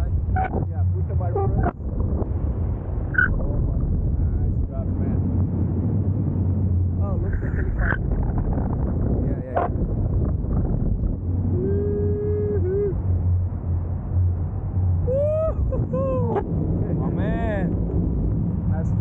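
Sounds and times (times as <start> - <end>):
wind buffeting microphone: 0.0 - 19.0
person giving short cries: 15.1 - 16.4.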